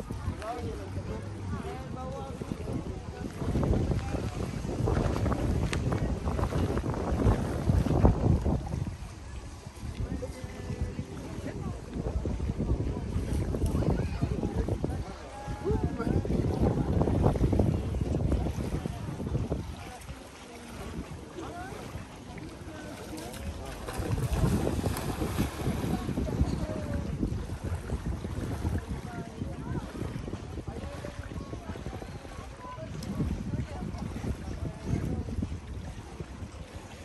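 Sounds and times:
small waves lapping on shore: 0.0 - 37.0
wind buffeting microphone: 0.0 - 37.0.

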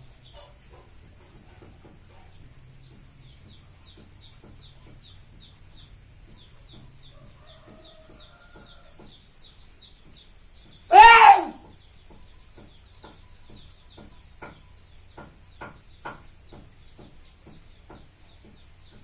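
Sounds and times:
loud bird squawk: 10.9 - 11.6
faint high chirps: 10.9 - 11.7.

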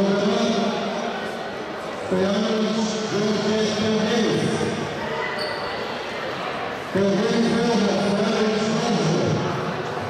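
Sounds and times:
man's voice echoing: 0.0 - 1.1, 2.0 - 4.9, 6.9 - 9.7.

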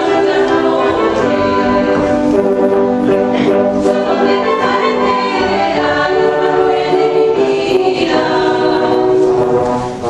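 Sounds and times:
live folk dance music ensemble: 0.0 - 10.0.

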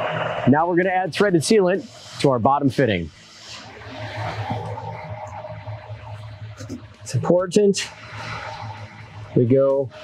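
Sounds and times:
low hum: 0.0 - 2.3, 3.1 - 10.0.

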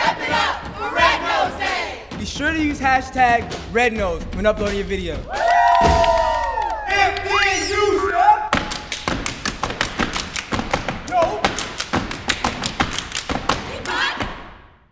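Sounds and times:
foot stomps and hand claps: 4.6 - 7.6, 8.5 - 14.5
young people cheering and whooping: 5.3 - 8.5.

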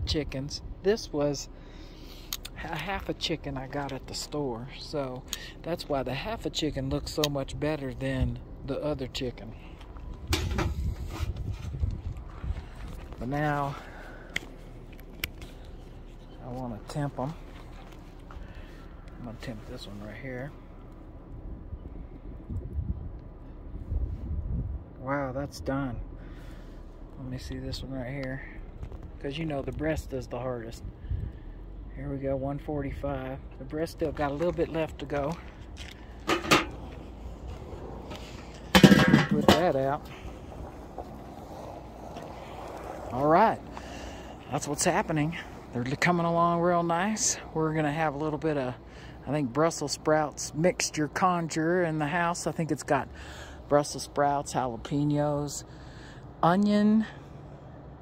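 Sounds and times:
low rumble: 6.7 - 46.7.

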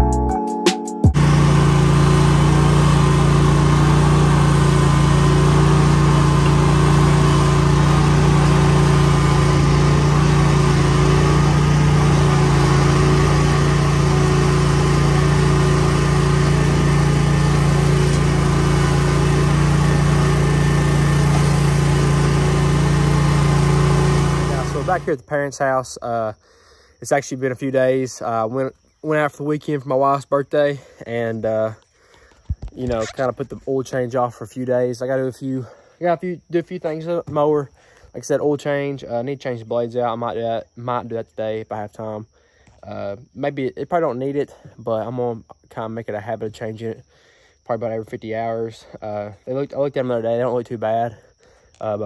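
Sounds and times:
mower engine running: 1.0 - 25.3, 32.4 - 33.6, 51.2 - 52.0.

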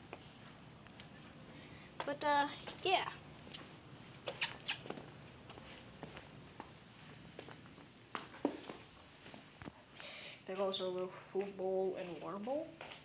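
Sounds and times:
footsteps on concrete: 0.0 - 9.8, 10.5 - 13.0
short high squeaks: 3.4 - 5.6.

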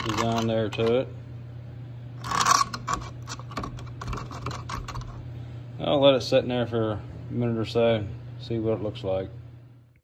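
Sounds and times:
steady low hum: 0.0 - 10.0
knife blade scraping glass jar: 2.2 - 5.2.

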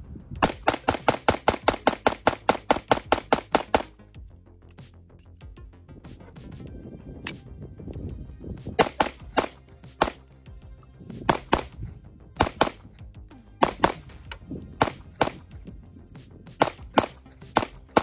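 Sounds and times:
pistol shots in quick pairs: 0.4 - 4.0, 8.8 - 10.3, 11.3 - 11.8, 12.4 - 12.9, 13.6 - 14.2, 14.8 - 15.6, 16.6 - 18.0.

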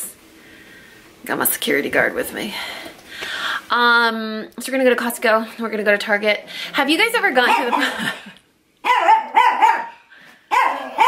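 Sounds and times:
small dog barking: 8.8 - 11.0.

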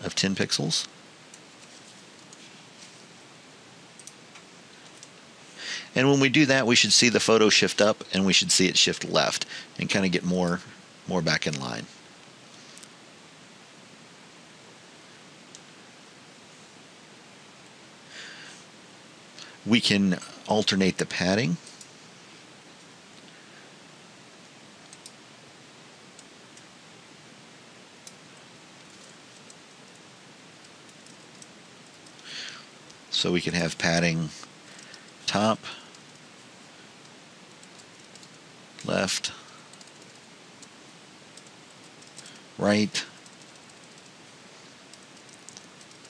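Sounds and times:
low hiss: 0.0 - 46.0
mouse and keyboard clicks: 44.9 - 46.0.

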